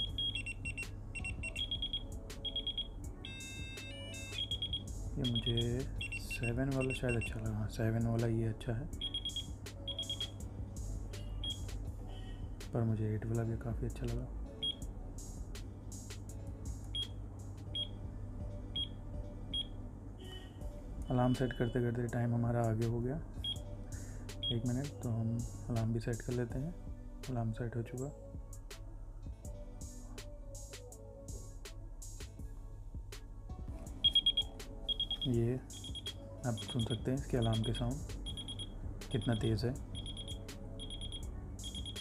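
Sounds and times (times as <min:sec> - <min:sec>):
steady several-note alarm tone: 0:00.0 - 0:07.3, 0:34.0 - 0:36.1, 0:36.8 - 0:42.0
high-pitched alarm beeps: 0:00.0 - 0:07.4, 0:09.0 - 0:10.4, 0:34.0 - 0:42.0
background music: 0:00.0 - 0:42.0.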